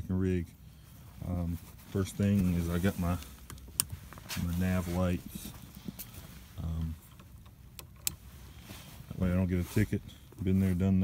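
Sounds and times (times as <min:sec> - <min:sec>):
handling kayak gear: 0:00.5 - 0:11.0.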